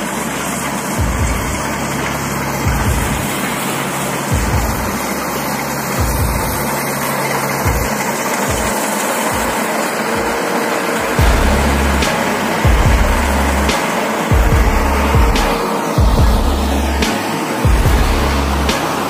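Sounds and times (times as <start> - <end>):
combine harvester running: 0.0 - 19.0.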